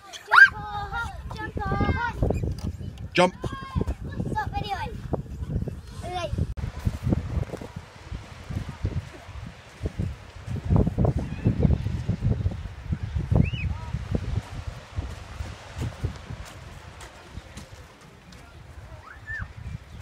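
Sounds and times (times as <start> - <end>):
wind buffeting microphone: 0.3 - 20.0
faint distant voices: 5.4 - 20.0.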